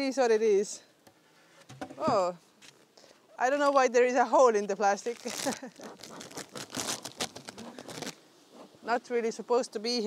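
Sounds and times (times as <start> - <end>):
plastic sheet crinkling: 5.0 - 8.2.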